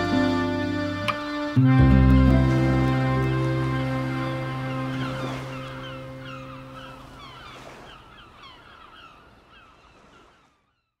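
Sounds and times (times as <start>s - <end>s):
soft background music chord: 0.0s - 6.9s
flock of birds calling: 2.1s - 10.4s.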